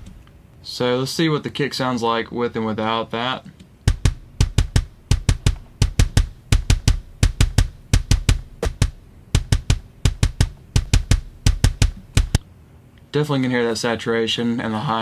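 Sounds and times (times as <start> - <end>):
kick drum double-bass runs: 3.9 - 12.4.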